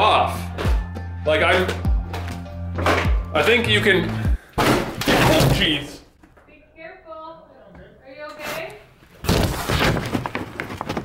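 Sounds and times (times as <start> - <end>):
floor crashing and debris falling: 4.6 - 5.9, 9.1 - 11.0
cracks and clatter: 9.2 - 11.0.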